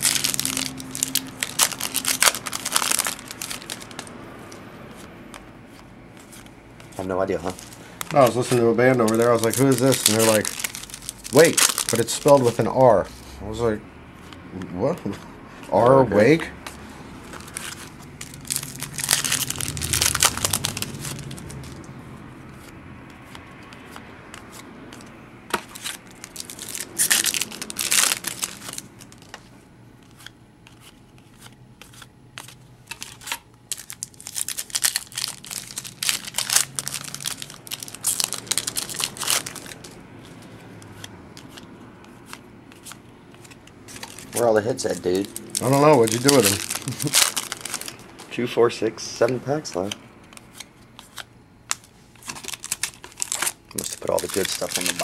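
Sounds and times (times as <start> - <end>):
foil wrapper crinkling and tearing: 0.0 - 4.1, 6.9 - 12.8, 17.3 - 21.9, 23.8 - 29.4, 30.7 - 40.4, 42.3 - 48.4, 49.8 - 55.0
cards being handled: 0.0 - 12.8, 14.2 - 48.4, 49.2 - 55.0.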